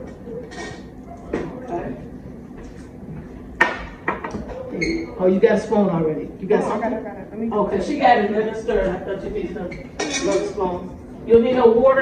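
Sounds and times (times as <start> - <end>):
kitchen utensils and dishes clattering: 9.9 - 10.6.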